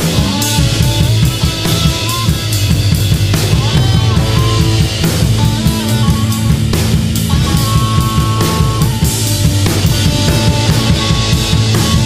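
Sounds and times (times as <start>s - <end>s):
drum hits with cymbals: 0.0s - 12.0s
psychedelic rock band playing: 0.0s - 12.0s
guitar holding long notes: 1.0s - 12.0s.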